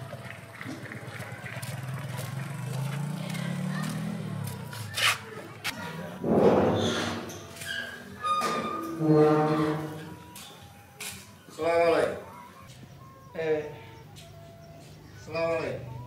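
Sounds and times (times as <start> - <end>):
loud bang: 6.2 - 7.2.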